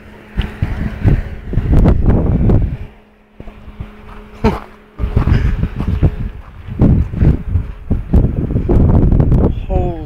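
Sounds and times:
faint steady hum: 0.0s - 10.0s
wind buffeting microphone: 0.0s - 10.0s.

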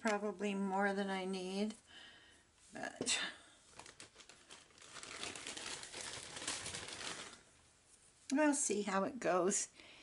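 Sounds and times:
plastic packaging crinkling: 3.7s - 7.5s.

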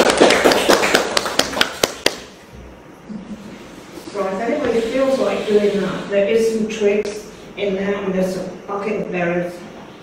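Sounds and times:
audience clapping: 0.0s - 2.3s.

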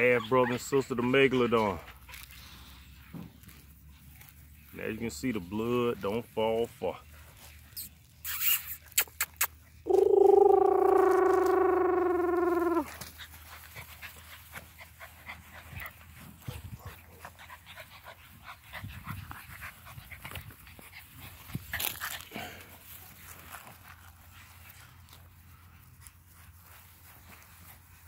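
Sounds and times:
rustling in grass: 1.1s - 9.0s, 9.6s - 28.0s
puppy whining: 7.7s - 13.1s.

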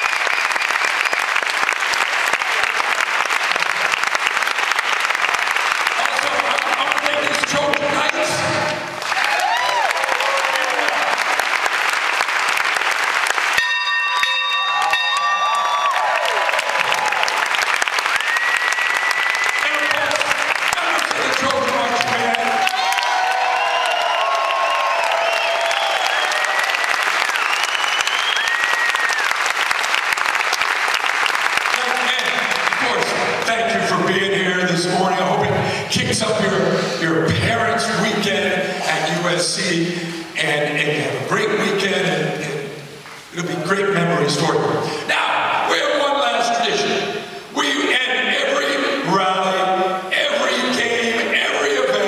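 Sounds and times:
audience applauding and cheering: 0.0s - 36.5s
whoops: 9.1s - 11.3s, 14.6s - 17.5s, 18.1s - 19.8s, 22.3s - 29.4s.

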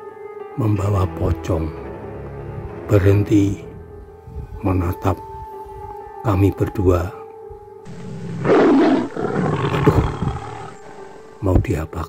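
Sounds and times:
tiger roaring: 7.9s - 11.4s.

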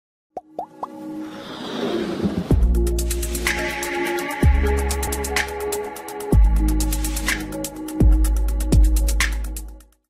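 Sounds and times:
rising plop sound effects: 0.4s - 1.0s.

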